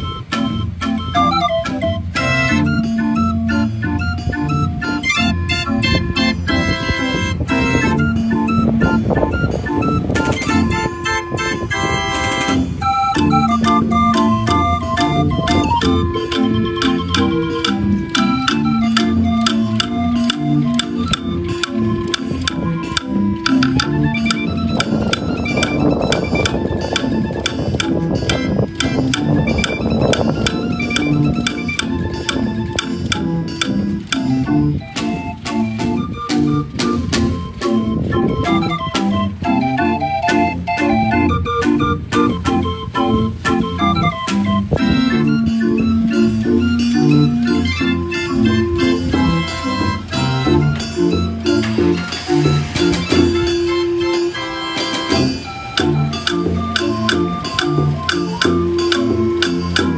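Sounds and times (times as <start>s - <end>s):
street organ playing: 0.0s - 59.9s
woodblocks: 0.0s - 59.9s
snare drum: 48.2s - 59.9s.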